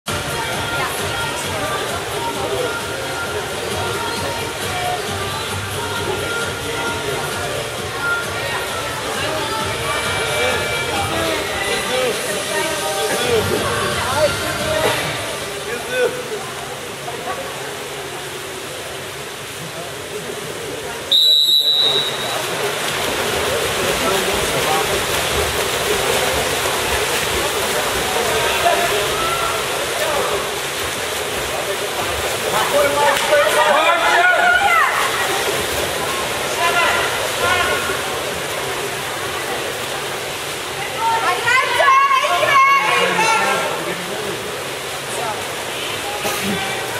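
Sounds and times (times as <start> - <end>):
water splashing in indoor pool: 0.1 - 46.9
referee's whistle blast: 21.1 - 22.4.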